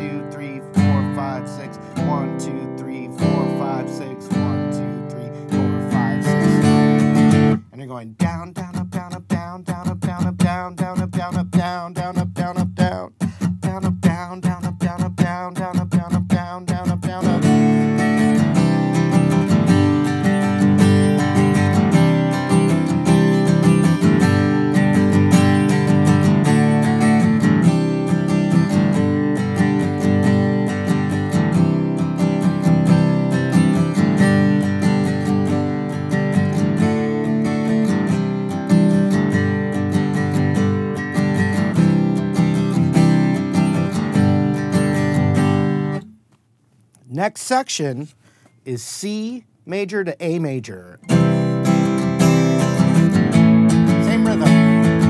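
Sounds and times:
acoustic guitar strumming: 0:00.0 - 0:46.4, 0:47.1 - 0:55.0.

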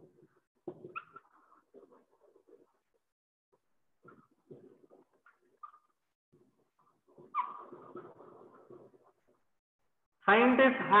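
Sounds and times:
marker squeaking on a whiteboard: 0:00.0 - 0:03.2, 0:04.0 - 0:09.6.

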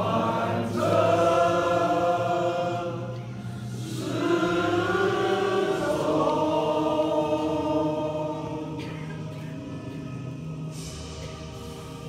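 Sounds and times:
men singing in unison: 0:00.0 - 0:11.2.

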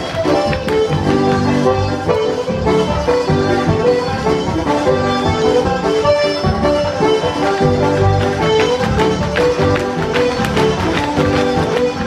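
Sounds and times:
band playing dance music: 0:00.0 - 0:12.0.

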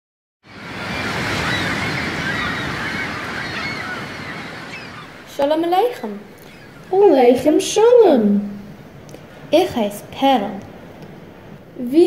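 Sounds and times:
surf washing onto shore: 0:00.5 - 0:07.0
faint birds calling: 0:00.5 - 0:07.5.

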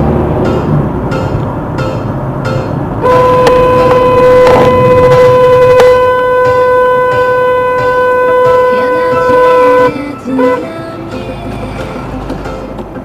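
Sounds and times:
road noise inside car: 0:00.0 - 0:13.0
car horn long blast: 0:03.0 - 0:10.8.

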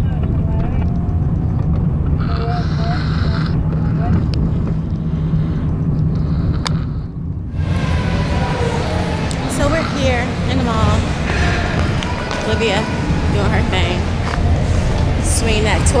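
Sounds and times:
faint voices: 0:00.0 - 0:05.0, 0:07.6 - 0:16.0
indoor hubbub: 0:00.0 - 0:05.4, 0:07.5 - 0:16.0
road and engine rumble in car: 0:00.0 - 0:16.0.

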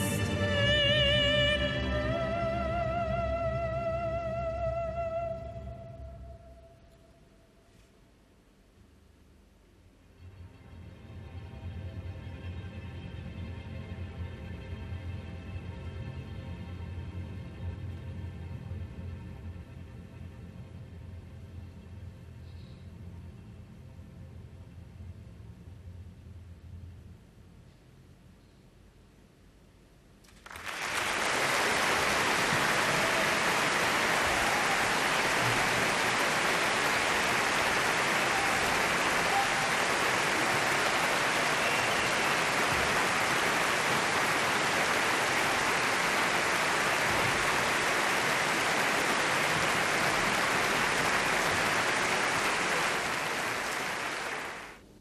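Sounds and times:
large audience applauding: 0:00.0 - 0:00.3, 0:30.3 - 0:54.8.

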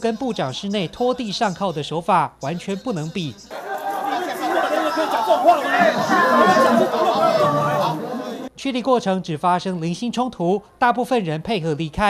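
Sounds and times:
men arguing with raised voices: 0:02.5 - 0:08.5.

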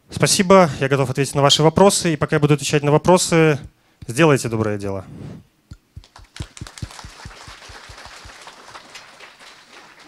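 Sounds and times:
audience applauding: 0:06.0 - 0:10.0.

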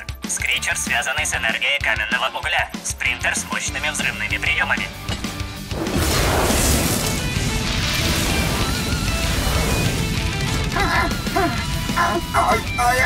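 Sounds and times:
action background music: 0:00.0 - 0:13.0
loud crash with rush of noise: 0:05.7 - 0:10.8.

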